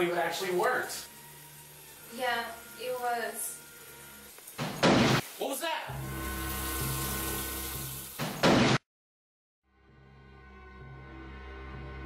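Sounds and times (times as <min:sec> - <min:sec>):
low sustained music tones: 0:00.0 - 0:04.4
running water hissing: 0:00.0 - 0:08.6.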